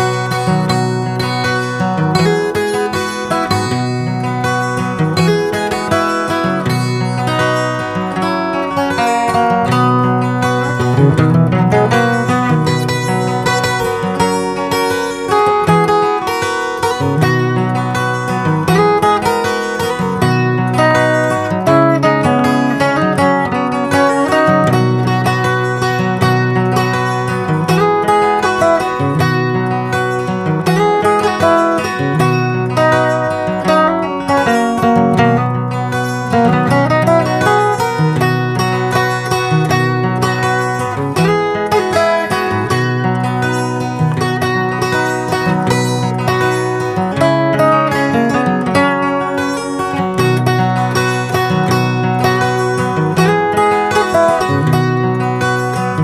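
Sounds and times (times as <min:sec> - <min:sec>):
acoustic guitar plucked melody: 0:00.0 - 0:56.0.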